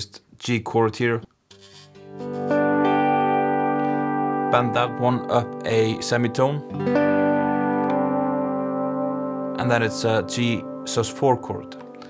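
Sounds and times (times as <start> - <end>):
guitar string bending: 1.5 - 12.0
electric lap steel guitar chord: 2.0 - 12.0.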